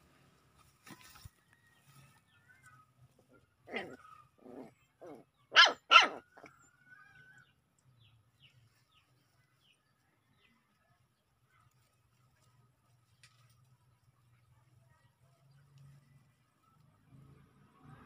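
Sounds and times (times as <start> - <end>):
puppies barking: 3.7 - 6.5.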